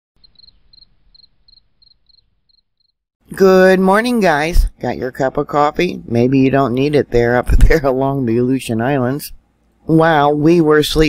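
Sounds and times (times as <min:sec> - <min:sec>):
cricket chirping: 0:00.2 - 0:03.0.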